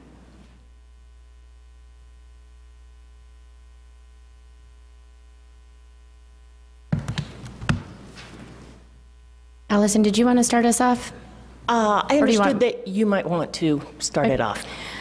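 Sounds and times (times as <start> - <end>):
electrical mains hum: 0.0 - 15.0
knocks and bumps: 6.9 - 8.0.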